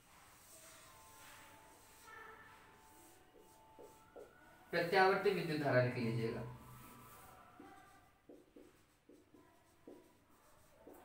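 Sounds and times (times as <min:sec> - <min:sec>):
marker squeaking on whiteboard: 0:00.4 - 0:05.4, 0:06.5 - 0:11.0.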